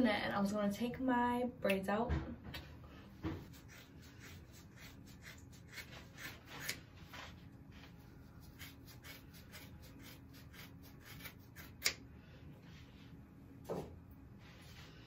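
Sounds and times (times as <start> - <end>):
scratchy rubbing of hair braids: 3.4 - 11.9.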